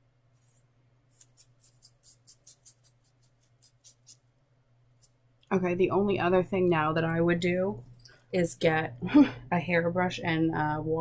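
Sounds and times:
fingers rustling wig hair: 0.4s - 4.2s.

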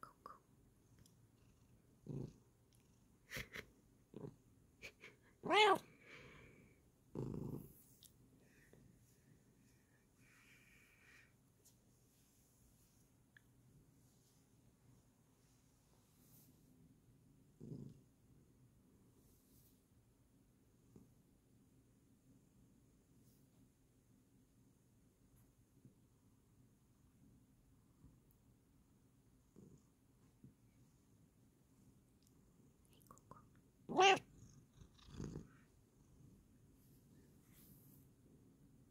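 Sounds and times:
cat purring: 0.0s - 11.2s, 16.1s - 19.7s, 27.8s - 38.9s
cat meowing: 5.4s - 5.8s, 33.9s - 34.3s
cat chirps: 33.9s - 34.3s.

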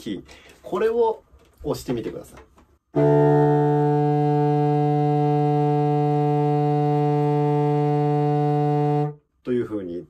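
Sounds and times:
contrabassoon long note: 2.9s - 9.2s.

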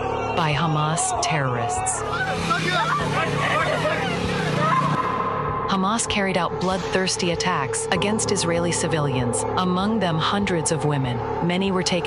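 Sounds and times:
people shouting: 0.0s - 5.5s
motorcycle engine running: 2.0s - 12.0s.

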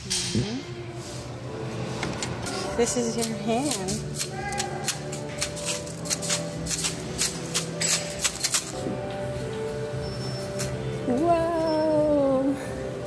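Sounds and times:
background music: 0.0s - 13.0s
pins clicking and clattering: 3.2s - 8.8s.

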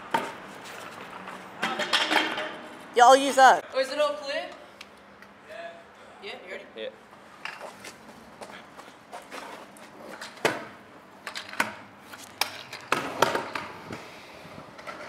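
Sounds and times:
scooter wheels rolling on concrete: 0.0s - 4.6s, 7.1s - 15.0s.

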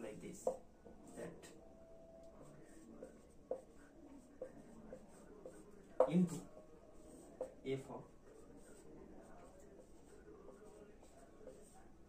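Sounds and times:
marker pen writing on whiteboard: 0.1s - 1.6s, 2.2s - 12.0s.

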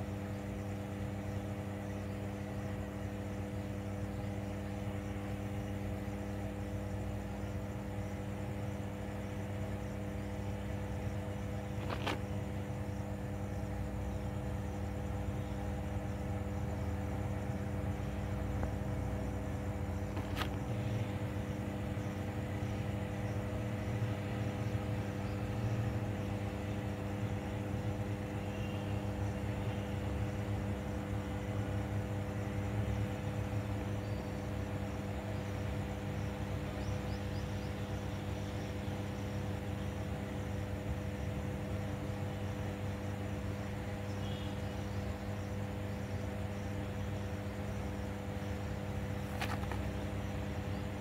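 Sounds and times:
electrical hum: 0.0s - 51.0s.

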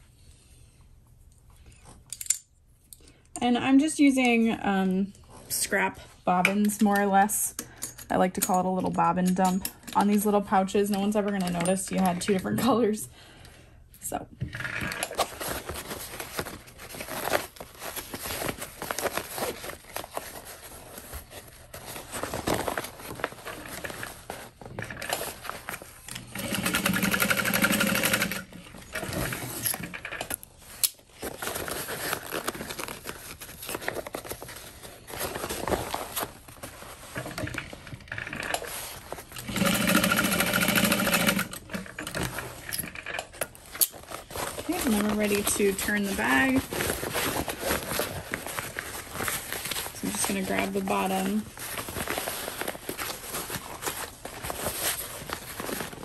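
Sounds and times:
sewing machine running: 26.2s - 29.4s, 39.4s - 41.8s.

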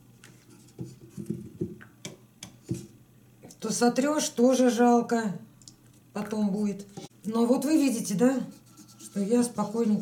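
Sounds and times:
objects knocking on a table: 0.8s - 2.9s.

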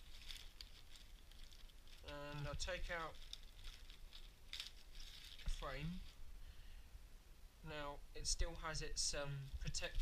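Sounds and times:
plastic packet crinkling: 0.0s - 6.2s, 9.4s - 10.0s.

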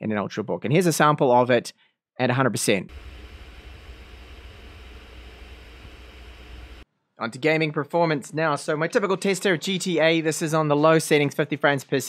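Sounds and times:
cooling fan running: 2.9s - 6.8s.

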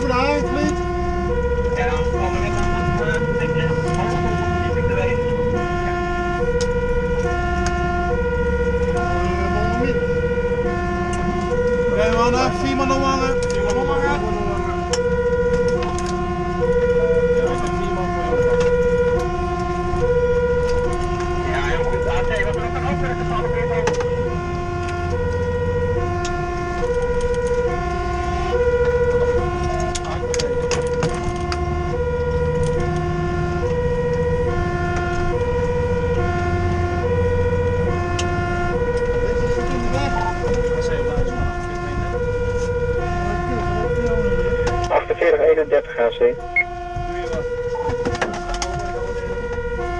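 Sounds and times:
truck engine rumble: 0.0s - 49.9s
two-tone siren: 0.0s - 49.9s.

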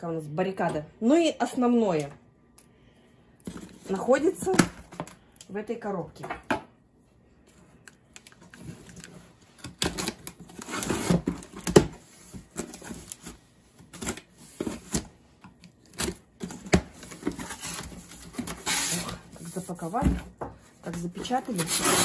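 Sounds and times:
cardboard scraping and rustling: 16.1s - 20.2s, 20.9s - 22.0s
knife cutting packing tape: 21.4s - 22.0s.

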